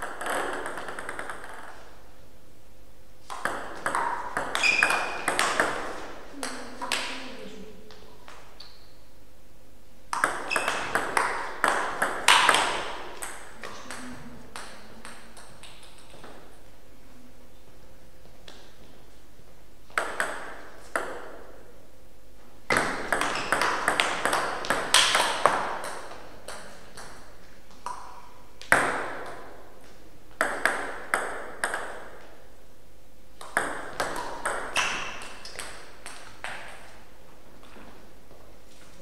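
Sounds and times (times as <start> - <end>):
table tennis ball hits: 0.0 - 1.9, 3.2 - 7.2, 10.1 - 16.5, 19.9 - 21.6, 22.7 - 29.7, 30.3 - 32.4, 33.4 - 37.0.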